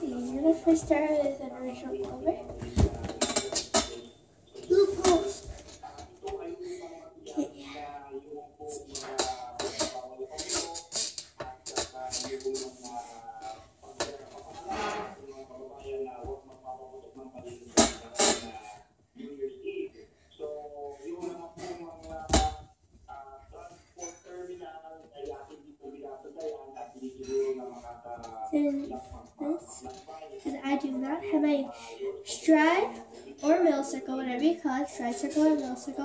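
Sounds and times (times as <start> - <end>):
faint voice with music: 0.0 - 36.0.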